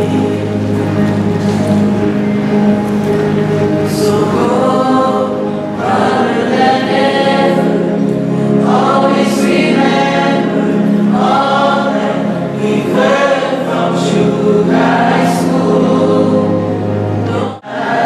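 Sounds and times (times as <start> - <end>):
choir singing: 0.0 - 2.7, 3.4 - 18.0.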